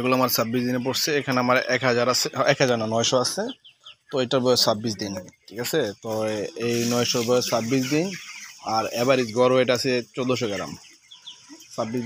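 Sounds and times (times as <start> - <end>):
chickens clucking and calling: 0.0 - 12.0
high chirping of birds: 0.0 - 12.0.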